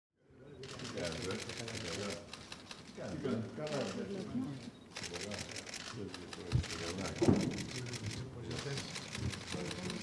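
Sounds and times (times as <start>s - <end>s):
camera shutters clicking rapidly: 0.6s - 3.0s, 4.9s - 10.0s
people talking: 3.0s - 10.0s.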